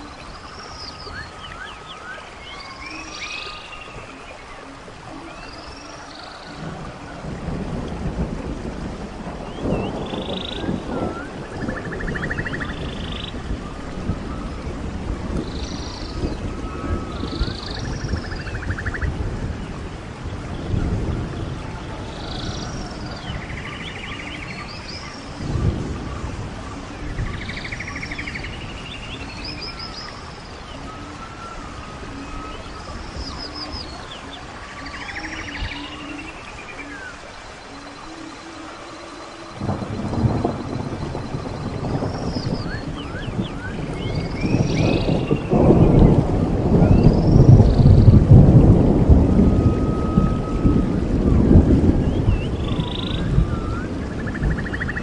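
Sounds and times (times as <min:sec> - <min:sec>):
birds calling and chirping: 0:00.0 - 0:07.7, 0:08.5 - 0:55.0
rain hissing: 0:00.0 - 0:55.0
thunder rumbling: 0:00.0 - 0:55.0.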